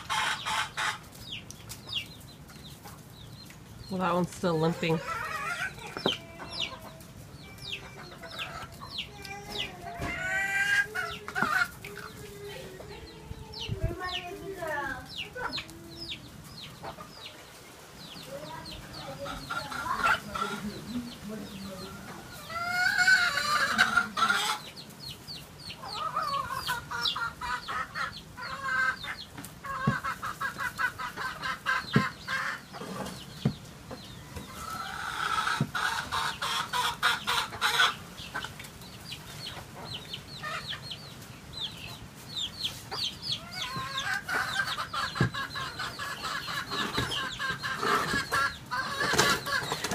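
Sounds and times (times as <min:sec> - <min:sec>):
chickens clucking: 0:00.0 - 0:49.9.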